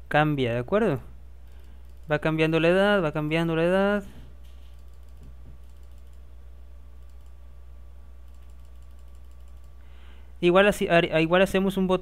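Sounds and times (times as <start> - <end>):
low electrical hum: 0.0 - 12.0
computer mouse clicks: 1.5 - 2.1, 4.4 - 6.3, 7.0 - 7.4, 8.2 - 9.8.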